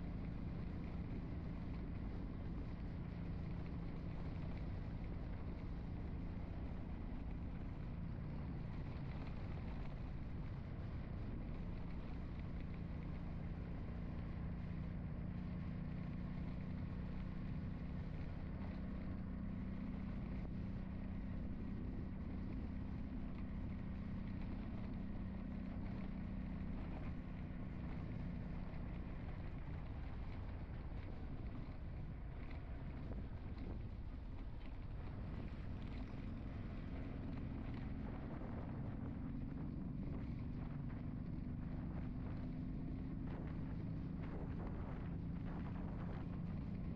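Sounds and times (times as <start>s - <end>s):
road and wind noise: 0.0s - 46.9s
vehicle engine humming: 0.0s - 46.9s.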